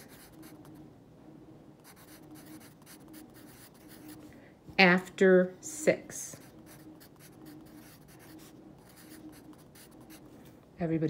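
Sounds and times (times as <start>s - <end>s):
pencil scratching on paper: 0.0s - 0.7s, 1.8s - 4.2s, 6.3s - 10.3s.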